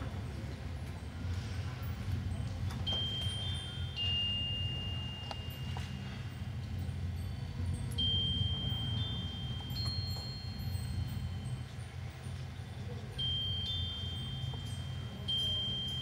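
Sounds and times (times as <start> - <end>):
glockenspiel notes ringing: 1.0 - 16.0.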